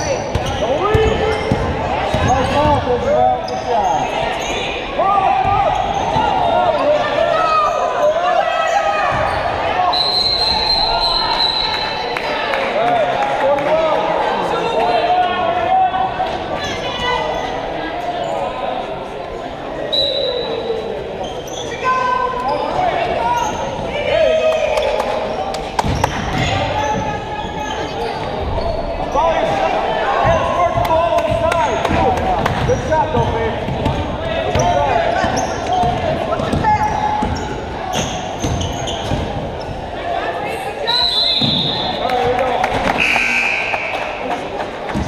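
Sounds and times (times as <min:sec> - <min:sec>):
shouts and chatter of people: 0:00.0 - 0:45.0.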